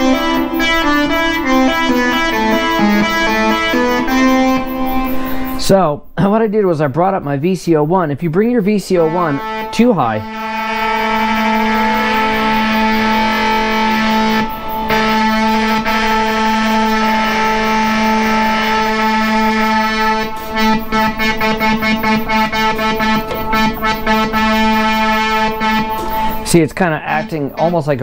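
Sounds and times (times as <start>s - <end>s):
buzzy synthesizer tone: 0.0s - 5.9s, 7.7s - 28.0s.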